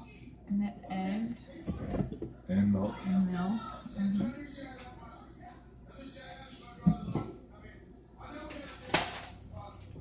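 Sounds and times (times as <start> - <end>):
faint voices: 0.0 - 10.0
kitchenware clinking: 6.8 - 7.4.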